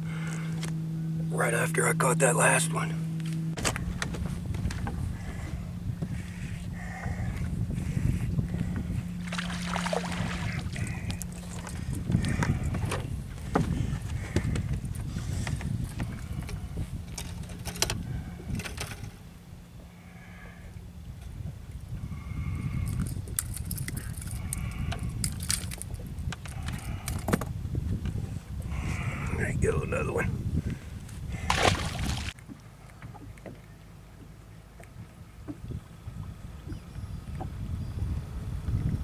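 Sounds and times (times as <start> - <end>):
steady low hum: 0.0 - 39.0
water lapping around boat: 0.0 - 39.0
wind rumble: 3.0 - 32.4, 34.8 - 39.0.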